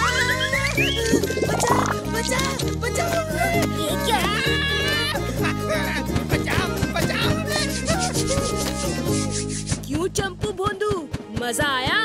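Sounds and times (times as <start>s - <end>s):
background music: 0.0s - 12.0s
cartoon scratching sound effect: 1.4s - 2.0s, 7.6s - 9.8s.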